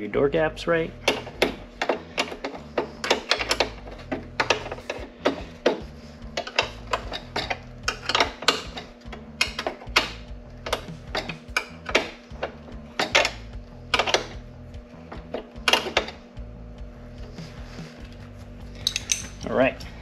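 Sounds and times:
low hum: 0.0 - 20.0
wrench clicking on bolts: 1.0 - 14.5, 15.1 - 16.2, 18.8 - 19.4.

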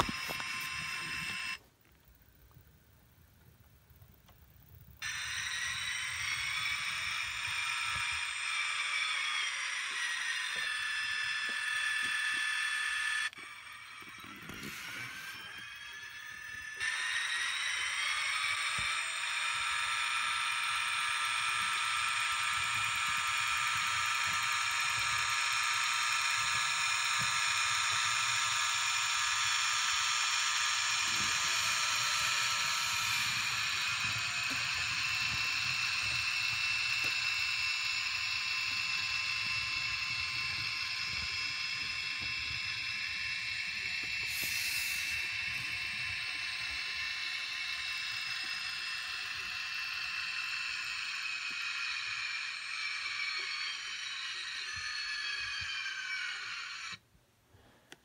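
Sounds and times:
model train motor whining: 0.0 - 2.6, 3.9 - 58.0
high hiss: 5.0 - 56.8.

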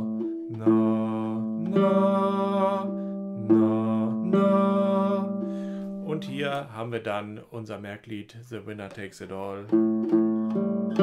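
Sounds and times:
classical guitar notes: 0.0 - 6.7, 9.7 - 11.0.

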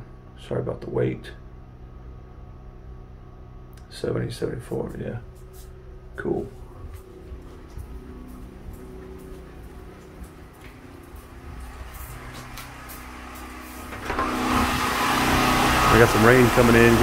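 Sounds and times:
generator engine running: 4.8 - 17.0.

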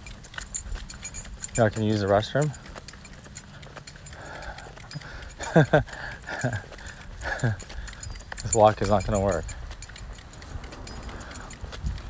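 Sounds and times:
leash clip clinking: 0.0 - 12.0.

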